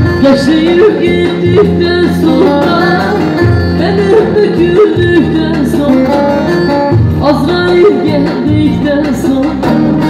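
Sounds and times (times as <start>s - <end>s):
amplified instrumental accompaniment: 0.0s - 10.0s
woman singing folk song: 0.0s - 10.0s.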